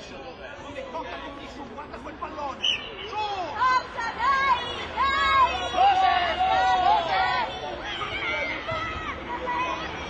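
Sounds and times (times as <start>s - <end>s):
chatter of overlapping voices: 0.0s - 10.0s
children's high voices: 3.6s - 10.0s.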